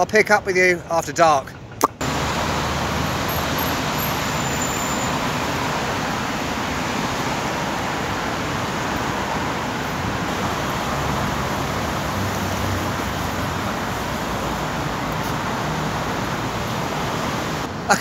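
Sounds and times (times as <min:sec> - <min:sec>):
low traffic rumble: 0:00.0 - 0:18.0
passing vehicles and tyre noise: 0:01.0 - 0:17.9.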